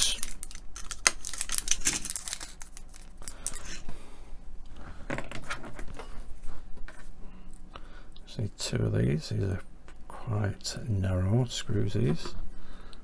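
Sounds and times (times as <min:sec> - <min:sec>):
knife cutting plastic packet: 0:00.0 - 0:03.8
plastic crinkling: 0:00.0 - 0:03.8.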